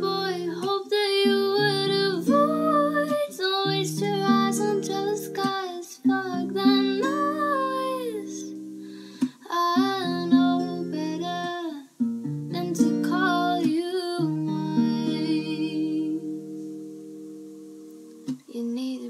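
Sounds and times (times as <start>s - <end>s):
woman singing: 0.0s - 8.6s, 9.2s - 11.9s, 12.5s - 16.6s, 18.5s - 19.0s
acoustic guitar strumming: 0.0s - 18.4s.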